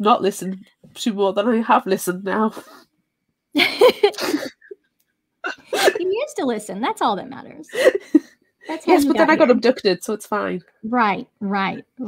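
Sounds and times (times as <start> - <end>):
woman laughing: 3.6 - 4.8, 7.7 - 9.8
woman speaking: 5.9 - 7.8, 8.7 - 12.0.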